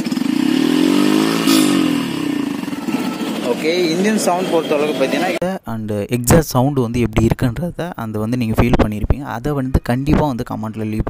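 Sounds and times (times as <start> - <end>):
motorcycle engine throttle blip: 1.3 - 2.8.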